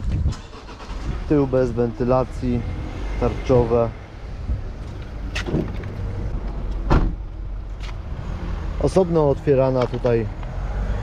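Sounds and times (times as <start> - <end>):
low rumble: 1.0 - 8.6.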